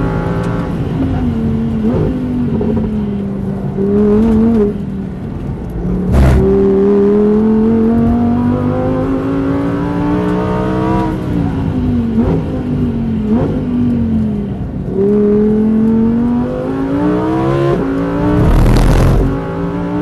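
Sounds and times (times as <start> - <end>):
engine blips on downshifts: 5.7 - 20.0
car engine revving: 5.9 - 11.0, 15.4 - 20.0
loud rushing burst: 18.2 - 19.4.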